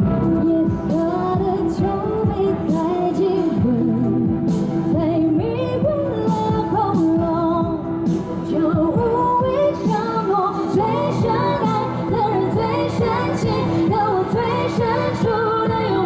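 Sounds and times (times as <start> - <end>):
electronic backing track with beat: 0.0 - 16.0
woman singing into a microphone: 0.0 - 16.0.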